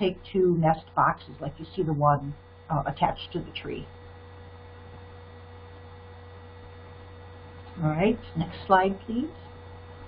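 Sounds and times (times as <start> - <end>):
woman's voice: 0.0 - 3.9, 7.8 - 9.4
electrical mains hum: 0.0 - 10.0.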